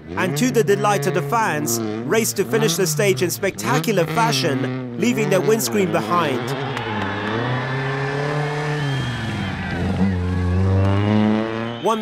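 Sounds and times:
rally car engine running hard: 0.0 - 12.0.

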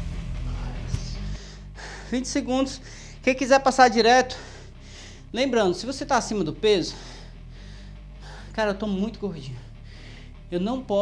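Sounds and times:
background music with bass line: 0.0 - 11.0
man breathing heavily and gasping: 0.5 - 2.2, 2.8 - 3.2, 4.3 - 5.3, 6.9 - 8.6, 9.5 - 10.5.

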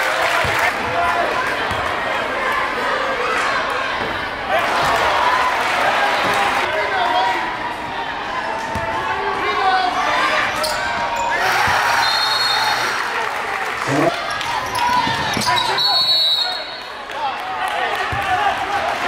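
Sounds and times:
crowd chatter: 0.0 - 15.6.

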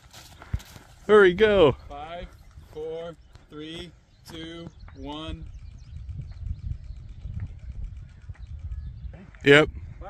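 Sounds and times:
wind rumble on microphone: 4.3 - 10.0.

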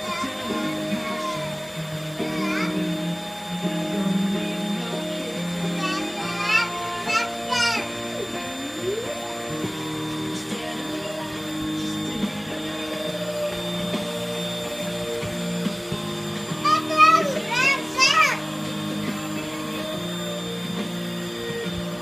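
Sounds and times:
stick vacuum running: 0.0 - 22.0.

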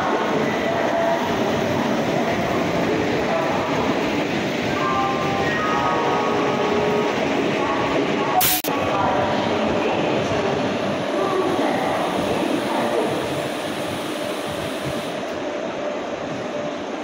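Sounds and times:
people's voices: 7.6 - 13.6.

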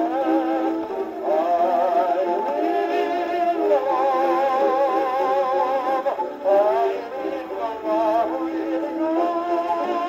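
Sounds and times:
old phonograph record music: 0.0 - 10.0.

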